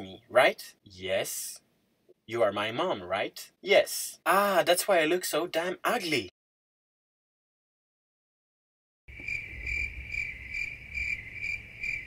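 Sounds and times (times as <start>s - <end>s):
cricket chirping: 9.1s - 12.0s.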